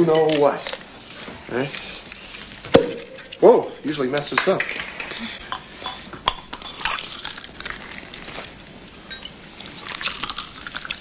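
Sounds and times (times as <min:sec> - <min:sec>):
champagne pouring and fizzing: 0:04.9 - 0:11.0.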